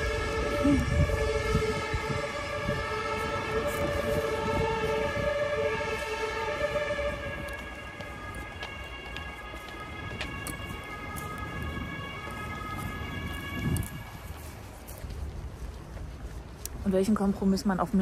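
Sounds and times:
street noise: 0:00.0 - 0:18.0.

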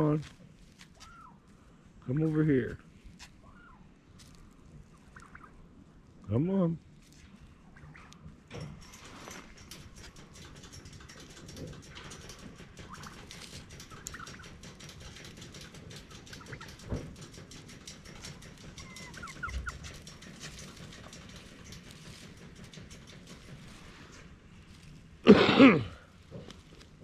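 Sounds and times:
turkeys calling: 0:00.8 - 0:02.4, 0:03.2 - 0:06.0, 0:07.4 - 0:08.4, 0:12.6 - 0:15.1, 0:16.0 - 0:17.0, 0:18.2 - 0:22.3.

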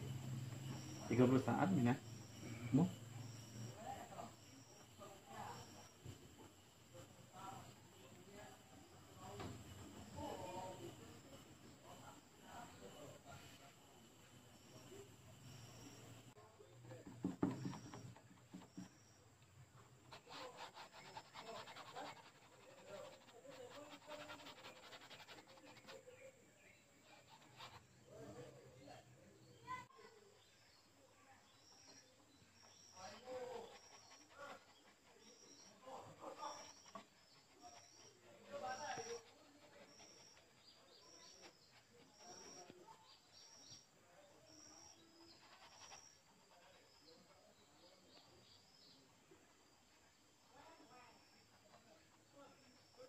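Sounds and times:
bird chirping faintly: 0:00.0 - 0:53.0
paintbrush tapping on canvas: 0:16.9 - 0:19.1
tissue dabbing on canvas: 0:20.1 - 0:26.1.

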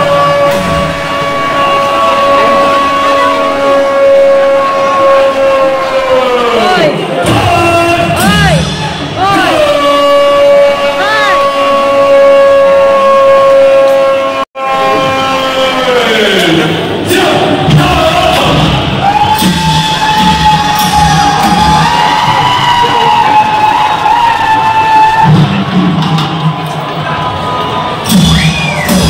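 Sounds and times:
long shouted call over loudspeakers: 0:00.0 - 0:08.6, 0:09.2 - 0:16.6
music: 0:00.0 - 0:11.4, 0:16.0 - 0:29.0
crowd noise: 0:00.0 - 0:29.0.

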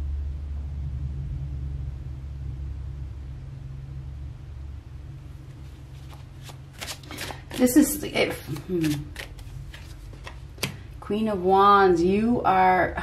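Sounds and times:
low background hum: 0:00.0 - 0:13.0
cards rustling and clicking: 0:05.5 - 0:11.0.

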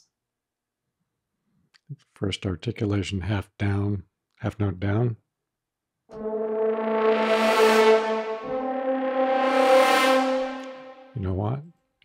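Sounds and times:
french horn ensemble held chord: 0:06.1 - 0:11.2.

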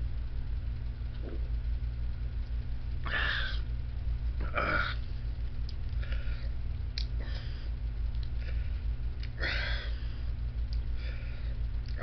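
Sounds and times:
electric fan humming: 0:00.0 - 0:12.0.

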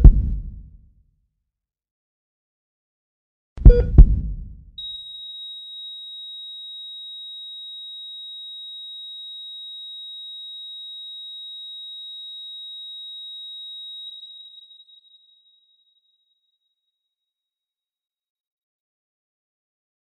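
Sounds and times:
heart monitor flatline tone: 0:03.6 - 0:15.2.

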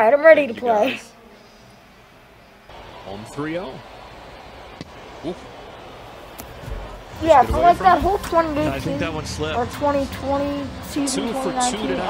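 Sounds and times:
faint broadcast hum: 0:00.0 - 0:12.0.

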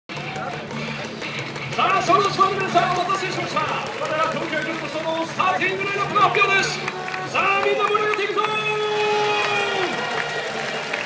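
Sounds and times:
public address announcer: 0:00.1 - 0:10.0
stadium crowd voices: 0:00.1 - 0:11.0.

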